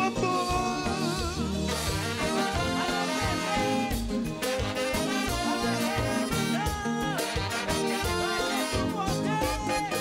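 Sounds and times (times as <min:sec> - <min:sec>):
bass: 0:00.0 - 0:10.0
drums: 0:00.0 - 0:10.0
horn section playing melody: 0:00.0 - 0:10.0.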